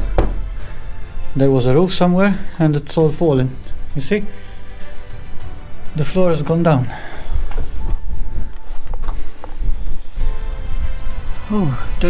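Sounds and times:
background music steady tones: 0:00.0 - 0:12.0.

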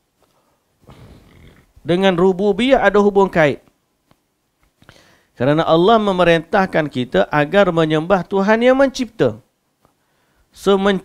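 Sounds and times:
breathy noise on microphone: 0:00.1 - 0:01.9, 0:04.0 - 0:05.4, 0:09.7 - 0:10.6
man speaking: 0:01.8 - 0:03.7, 0:05.4 - 0:09.5, 0:10.6 - 0:11.0.

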